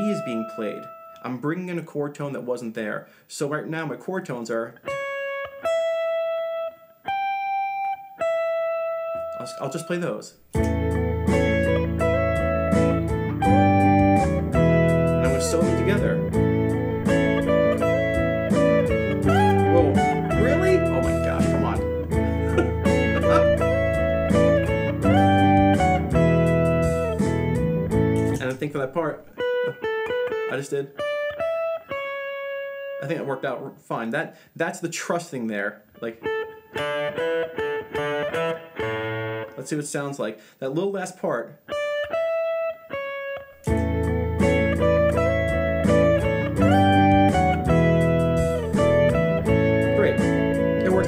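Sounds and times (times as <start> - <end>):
clean electric guitar notes: 0.0 - 1.2, 4.8 - 9.5, 10.5 - 33.0, 36.2 - 39.6, 41.7 - 51.0.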